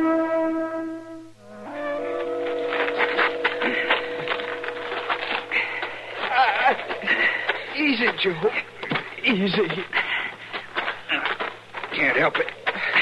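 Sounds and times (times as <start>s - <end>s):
brass chord: 0.0s - 5.6s
man groaning in pain: 6.2s - 7.1s.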